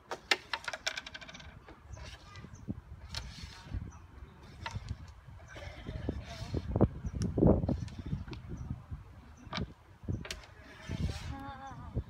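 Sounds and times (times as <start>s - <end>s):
carrom pieces clacking on board: 0.1s - 2.3s.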